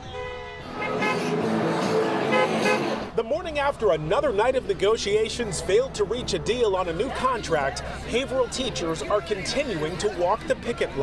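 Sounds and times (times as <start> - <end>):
car horns honking: 0.0 - 3.2
crowd of picketers: 0.0 - 11.0
road traffic din: 0.0 - 11.0.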